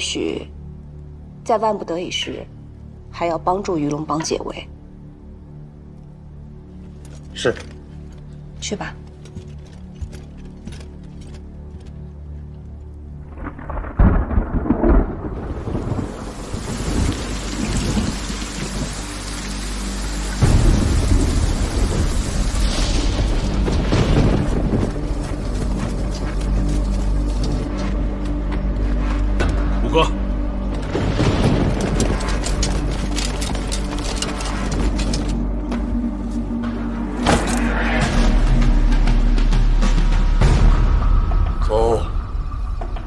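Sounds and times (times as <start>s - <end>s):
thunder crack: 13.3s - 19.0s, 20.4s - 25.9s, 30.8s - 33.0s
deep thunder rumble: 13.3s - 26.6s, 30.7s - 33.2s
heavy rain pouring: 13.3s - 28.2s, 29.8s - 35.6s.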